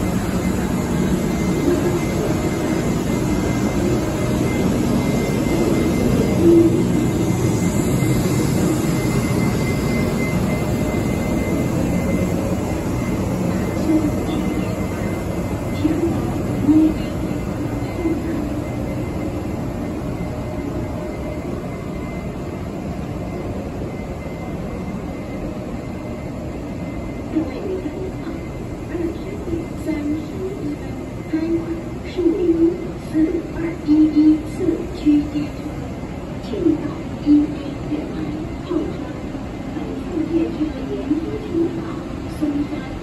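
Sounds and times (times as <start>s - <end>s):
faint high tone: 3.5s - 12.1s.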